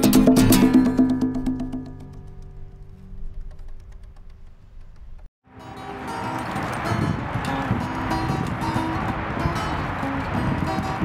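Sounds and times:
acoustic guitar chord ringing: 0.0s - 2.9s, 5.5s - 11.0s
busy music: 5.5s - 11.0s.

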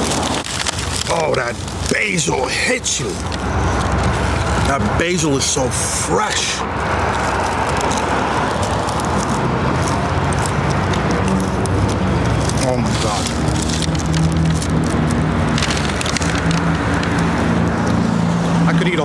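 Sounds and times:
engine hum: 0.0s - 19.0s
roar of passing cars: 3.4s - 19.0s.

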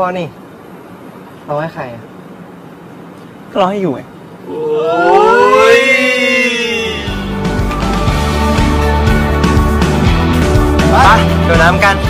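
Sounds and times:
man singing a long held note: 4.5s - 7.4s.

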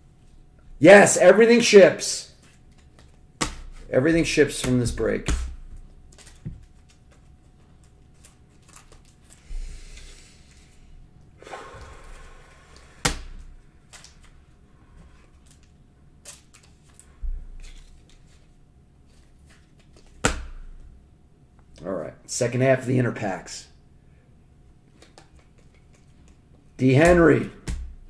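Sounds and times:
plastic wrapper crinkling: 7.8s - 9.4s.

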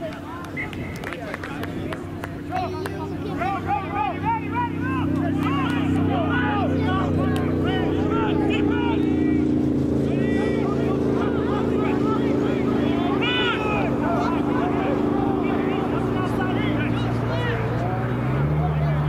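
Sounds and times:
low engine drone: 0.0s - 19.0s
players shouting: 0.0s - 19.0s.

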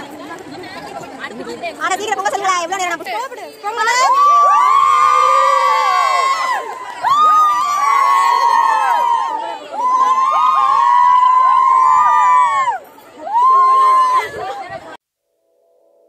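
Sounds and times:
women cheering together: 3.9s - 14.8s.

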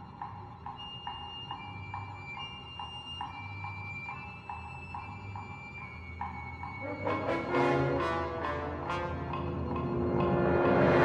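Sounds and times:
orchestral music: 6.8s - 11.0s.

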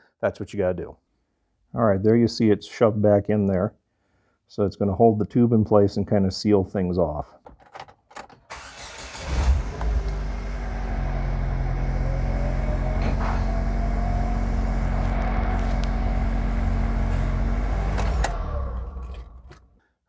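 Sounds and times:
car engine starting and idling: 8.5s - 19.8s.

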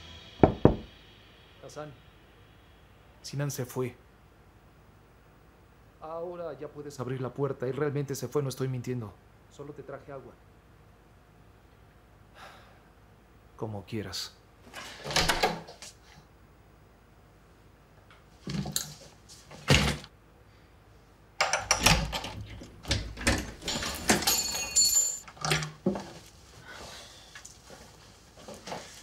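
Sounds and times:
knocks clicks and rustles: 21.4s - 26.3s
high metallic jingle: 23.6s - 25.3s.

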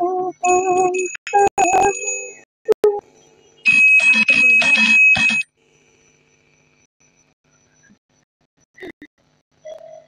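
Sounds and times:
electronic bell-like chimes: 0.4s - 2.5s.

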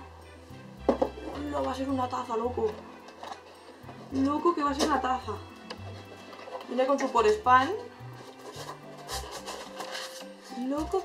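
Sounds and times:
quiet background music: 0.0s - 11.0s
cardboard scraping and rustling: 8.2s - 11.0s.

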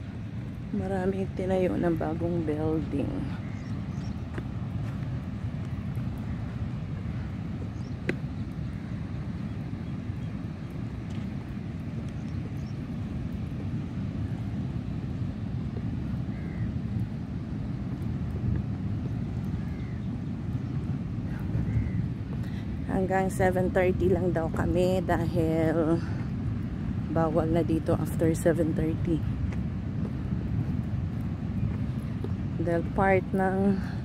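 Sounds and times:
wind buffeting microphone: 0.0s - 34.0s.

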